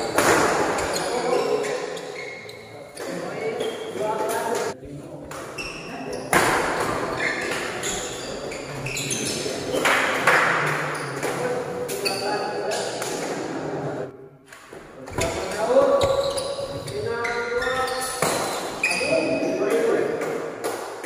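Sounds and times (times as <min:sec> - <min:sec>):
shoes squeaking on court floor: 0:00.0 - 0:04.7, 0:05.4 - 0:09.9, 0:10.6 - 0:13.3, 0:15.1 - 0:19.8
voices of people: 0:00.0 - 0:20.6.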